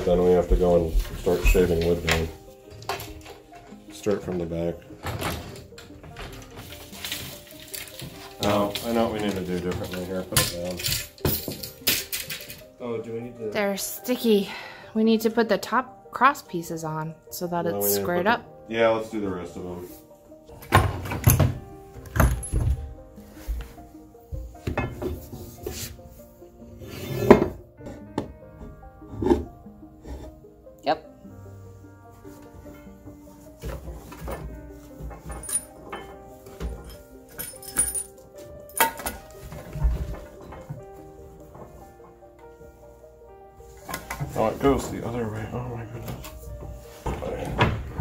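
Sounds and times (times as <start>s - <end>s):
background music: 0.0s - 48.0s
wooden knocks and thunks: 20.7s - 23.0s, 46.6s - 48.0s.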